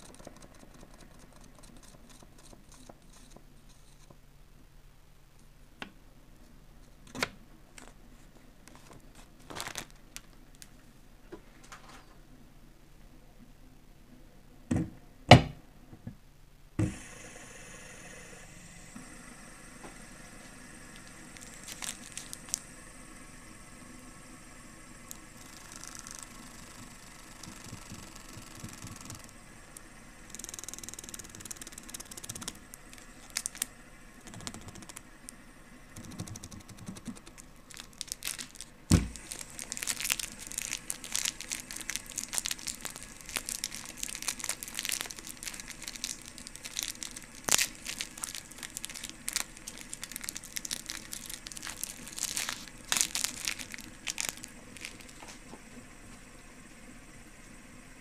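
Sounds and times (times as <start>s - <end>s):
plastic wrapper crinkling: 8.7s - 10.8s, 20.9s - 22.7s, 25.1s - 29.2s, 30.4s - 33.7s, 36.0s - 55.5s.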